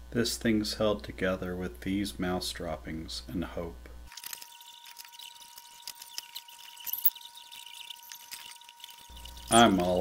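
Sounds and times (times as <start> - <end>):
faint steady high tone: 4.4 - 10.0.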